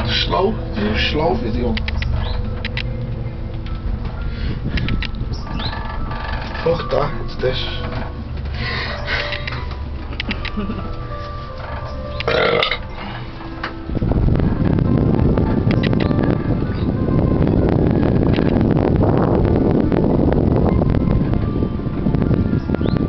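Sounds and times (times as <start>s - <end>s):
rattles: 0.0s - 16.2s
cable car rushing rumble: 0.0s - 23.0s
short burp: 12.3s - 12.8s.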